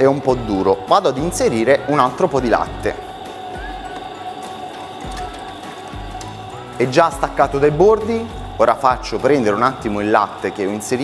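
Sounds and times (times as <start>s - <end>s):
soft background music: 0.0s - 11.0s
stand mixer motor hum: 0.0s - 11.0s.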